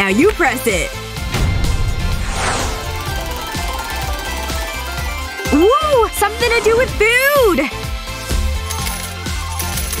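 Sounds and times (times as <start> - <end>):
background music: 0.0 - 10.0
coins clinking and dropping: 8.6 - 10.0.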